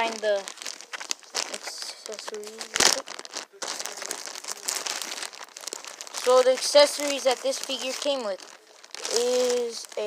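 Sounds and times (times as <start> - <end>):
packaging crinkling and rustling: 0.0 - 10.0.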